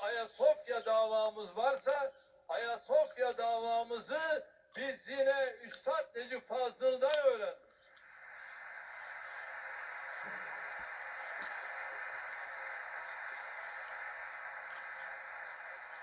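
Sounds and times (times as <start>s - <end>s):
audience applause: 8.0s - 16.0s.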